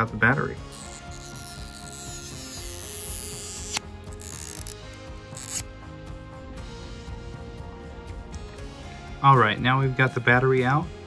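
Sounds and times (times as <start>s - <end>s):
background music: 0.0s - 11.0s
adhesive strips being pulled: 0.7s - 5.7s.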